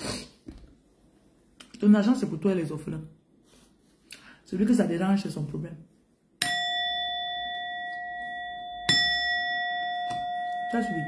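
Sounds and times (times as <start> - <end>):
bell ringing: 6.4 - 11.0.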